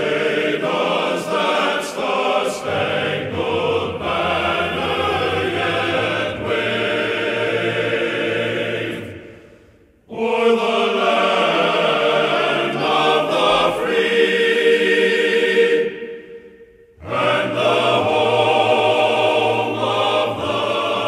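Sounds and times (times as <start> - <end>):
choir singing sustained notes: 0.0 - 21.0.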